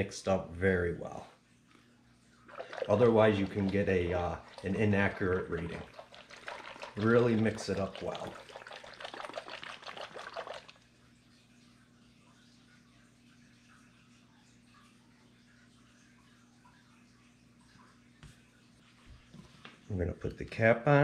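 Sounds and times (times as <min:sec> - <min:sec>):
bottle shaken with liquid sloshing: 0:02.4 - 0:10.9.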